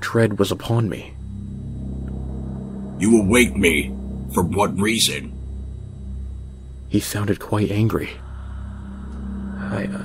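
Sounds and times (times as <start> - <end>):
dark ambient drone music: 0.0 - 10.0.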